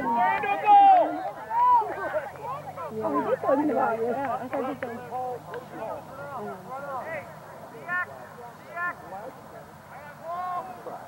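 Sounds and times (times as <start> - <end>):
distant shouts and calls: 0.0 - 11.0.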